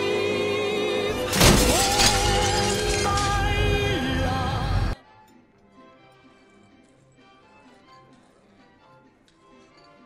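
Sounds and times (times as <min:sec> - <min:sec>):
loud crash: 0:01.1 - 0:03.6.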